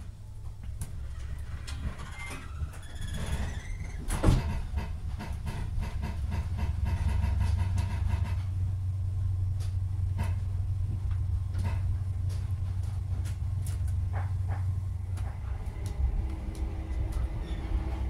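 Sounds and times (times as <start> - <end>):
train diesel engines droning: 4.6 - 18.0.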